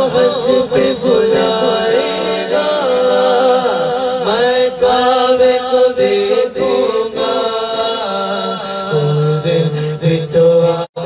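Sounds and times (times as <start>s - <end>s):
men chanting through microphones: 0.0s - 11.0s.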